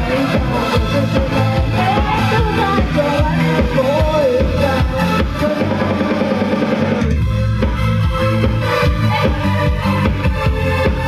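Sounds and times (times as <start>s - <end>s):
bass notes: 0.0s - 11.0s
drum beat: 0.0s - 11.0s
electric guitar: 0.0s - 11.0s.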